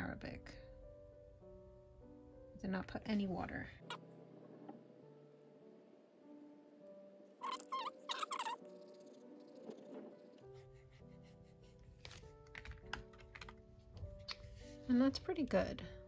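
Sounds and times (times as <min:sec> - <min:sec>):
background music with held notes: 0:00.0 - 0:16.0.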